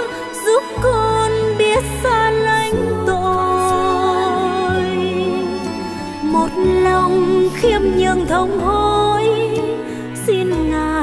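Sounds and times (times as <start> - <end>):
soft instrumental accompaniment: 0.0 - 11.0
woman singing a hymn: 0.0 - 11.0.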